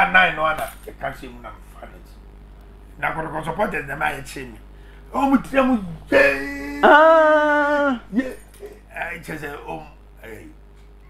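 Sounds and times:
soft voice sounds: 5.2 - 9.0
man's long vocal cry: 5.8 - 8.4.

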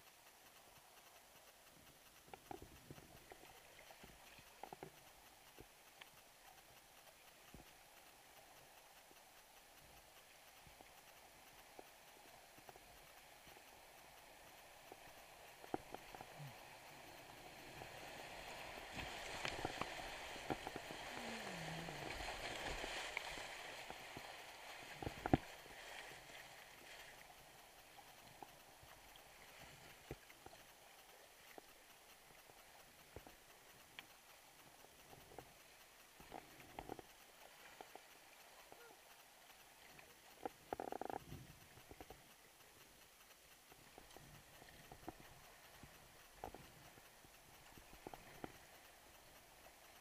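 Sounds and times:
paddle strokes knocking and splashing: 8.6 - 30.8
creek water rushing: 14.2 - 29.5.

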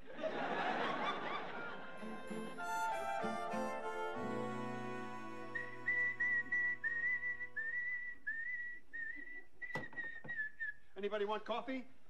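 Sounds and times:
held music chord: 1.7 - 7.8
man whistling a tune: 2.6 - 10.8.

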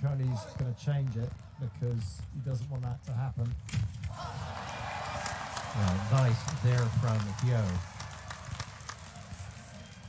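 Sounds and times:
quiet arena ambience: 0.0 - 10.0.

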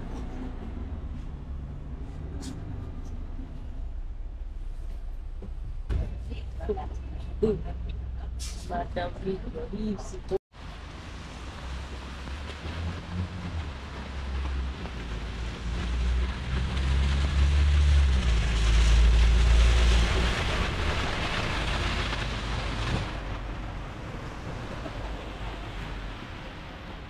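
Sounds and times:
bus engine rumble: 0.0 - 27.0
tyres hissing on wet asphalt: 10.6 - 23.2.

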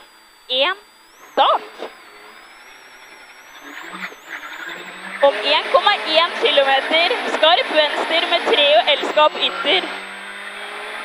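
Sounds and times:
high whine: 0.0 - 11.0
rally car engine accelerating: 1.0 - 11.0.

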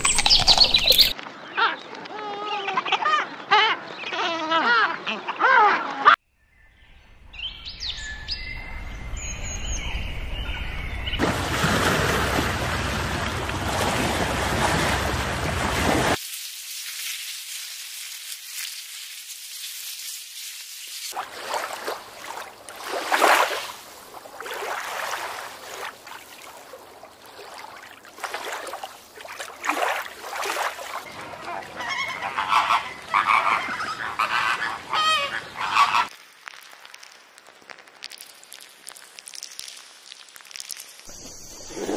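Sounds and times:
birds chirping and whistling: 0.0 - 1.2, 6.6 - 11.2
flamingos honking: 31.0 - 36.1.

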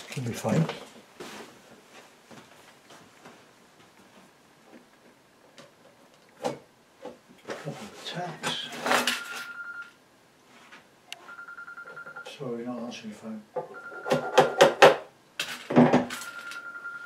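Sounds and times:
short ring tone: 9.0 - 9.9, 11.2 - 12.3, 13.7 - 14.8, 16.2 - 17.0
telephone ringing electronic trill: 9.0 - 9.9, 11.2 - 12.3, 13.6 - 14.9, 16.2 - 17.0.

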